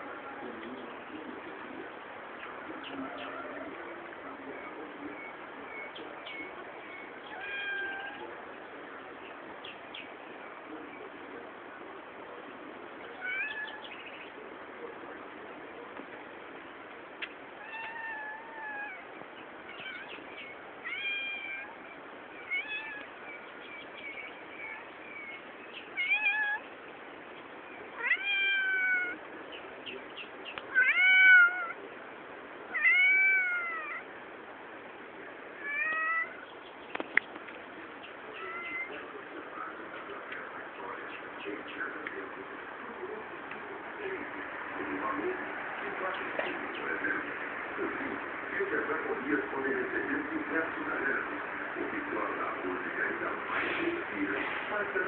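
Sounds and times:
animal cries: 7.2 - 8.3, 13.1 - 14.0, 17.6 - 23.2, 24.1 - 26.7, 28.0 - 29.2, 30.7 - 31.8, 32.7 - 34.1, 35.6 - 36.5, 38.3 - 39.0.

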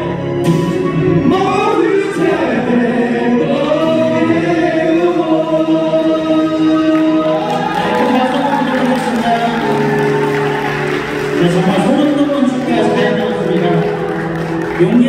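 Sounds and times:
person singing a song: 0.0 - 10.2.

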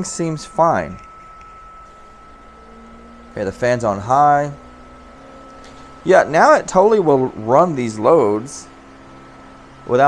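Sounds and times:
heater and fan whirring: 0.0 - 10.0
higher tone: 0.0 - 10.0
low steady hum: 0.0 - 10.0
thin high whine: 0.0 - 10.0.

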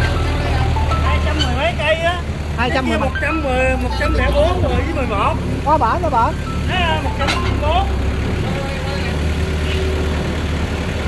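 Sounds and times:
diesel engine running: 0.0 - 11.0.

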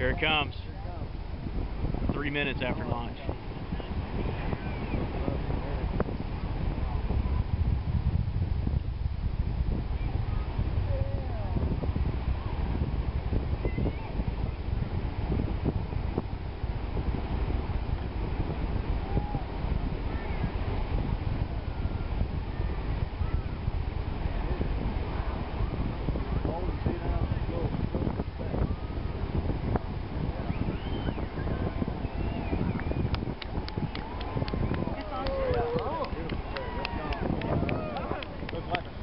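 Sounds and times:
distant rocket launch rumble: 0.0 - 39.0
wind on microphone: 0.0 - 39.0
faint voices of onlookers: 21.5 - 39.0.

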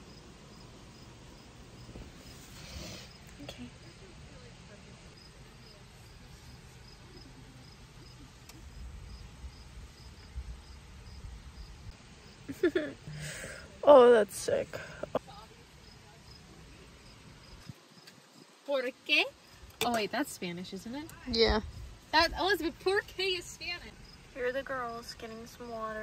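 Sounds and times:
cricket chirping: 0.0 - 2.0, 6.8 - 13.4, 22.5 - 26.0.

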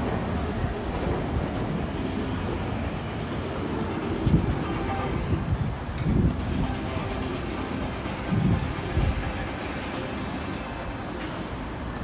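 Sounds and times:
rumbling city street noise: 0.0 - 12.0.

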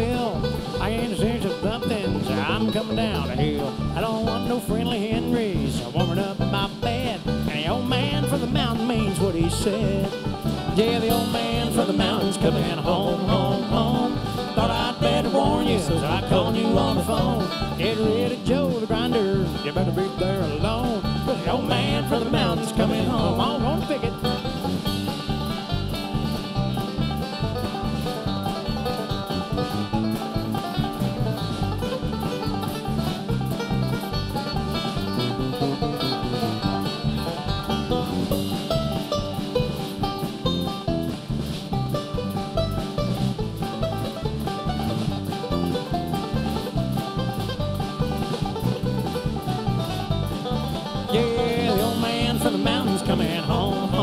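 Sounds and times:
person singing: 0.0 - 24.2, 51.0 - 54.0
country bluegrass band playing: 0.0 - 54.0.

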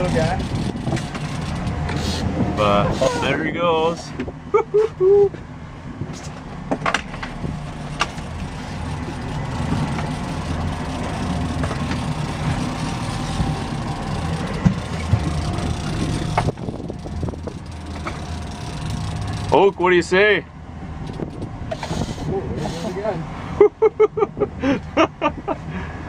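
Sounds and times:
wind on microphone: 0.0 - 3.2, 14.6 - 18.0
outboard motor running: 0.0 - 26.0.

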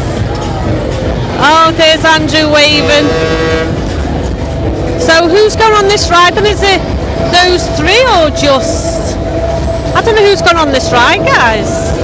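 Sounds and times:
low rumble of rides and music: 0.0 - 12.0
held horn-like tone: 2.5 - 4.1.

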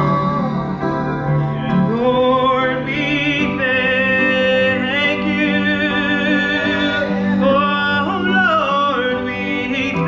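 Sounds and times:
electronic keyboard chords: 0.0 - 10.0.

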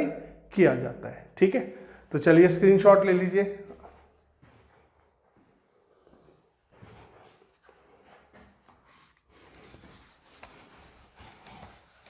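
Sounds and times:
duster scrubbing a whiteboard: 8.6 - 12.0.

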